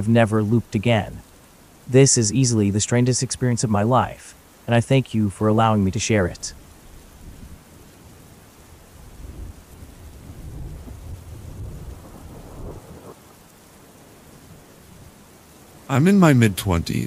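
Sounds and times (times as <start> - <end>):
steady rain: 0.0 - 17.0
low rumble of thunder: 9.0 - 13.3.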